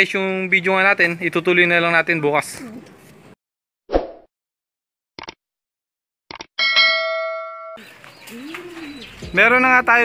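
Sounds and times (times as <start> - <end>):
bell-like ding: 6.6 - 7.8.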